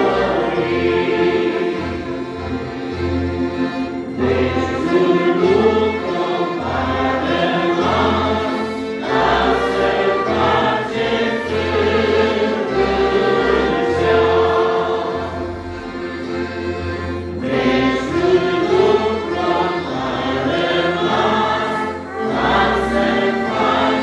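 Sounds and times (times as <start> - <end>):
voices singing along: 0.0 - 3.0, 4.0 - 16.6, 17.2 - 24.0
small band playing a hymn: 0.0 - 24.0.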